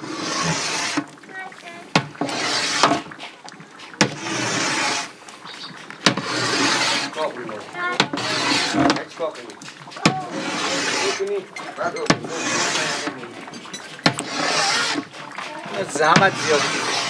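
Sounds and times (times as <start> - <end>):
paddle scraping through thick paste: 0.0 - 17.0
wooden paddle knocking metal cauldron: 1.9 - 17.0.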